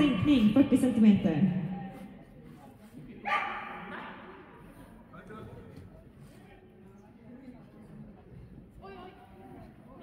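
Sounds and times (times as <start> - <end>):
dog barking with echo: 3.2 - 3.9.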